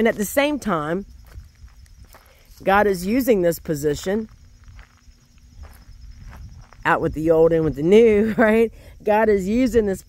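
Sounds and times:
woman speaking: 0.0 - 1.0, 2.6 - 4.3, 6.8 - 10.0
faint footsteps: 0.0 - 8.0.

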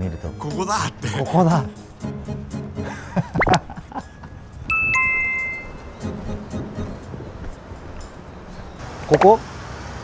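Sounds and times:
two-note chime: 4.7 - 6.1.

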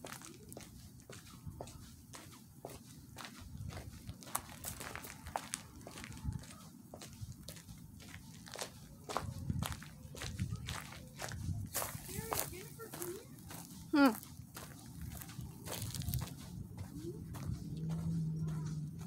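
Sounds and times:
footsteps on debris and dry dirt: 0.0 - 19.0.

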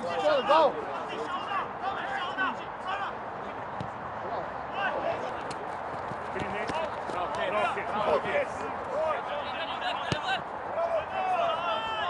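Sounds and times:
players shouting: 0.0 - 3.7, 4.3 - 12.0
ball knocks and feet on turf: 3.8 - 4.0, 5.4 - 8.4, 10.0 - 10.4.

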